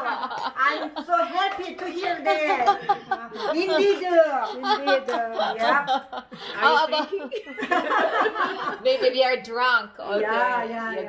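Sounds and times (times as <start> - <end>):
women talking: 0.0 - 7.7, 8.6 - 11.0
women laughing: 0.0 - 9.2.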